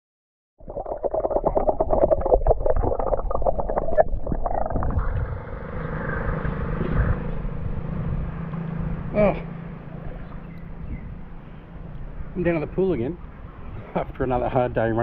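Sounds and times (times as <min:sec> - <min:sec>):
pool water splashing: 0:00.6 - 0:05.0
low hum: 0:00.6 - 0:12.4.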